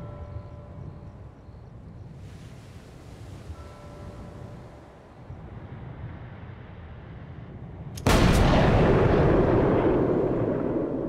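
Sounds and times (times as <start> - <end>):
long echoing tail: 8.0 - 11.0.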